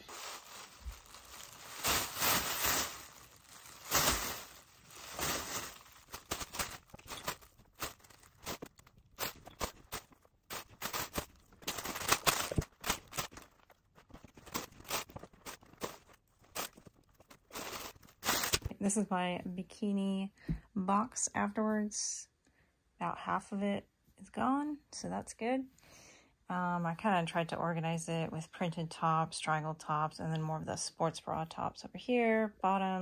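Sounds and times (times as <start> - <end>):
plastic bags crinkling and rustling: 0.0 - 18.7.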